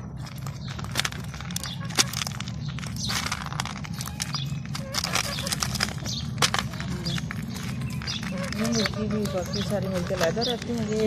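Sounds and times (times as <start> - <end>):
animals crunching snacks: 0.0 - 11.0
hen pecking clicks: 0.4 - 11.0.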